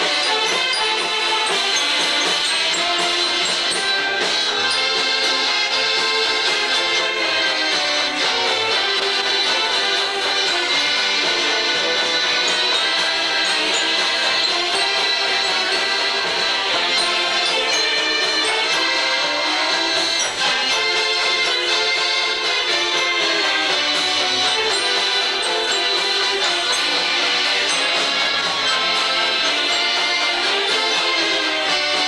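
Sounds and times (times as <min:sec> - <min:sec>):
banjos playing: 0:00.0 - 0:32.0
saxophones playing: 0:00.0 - 0:32.0.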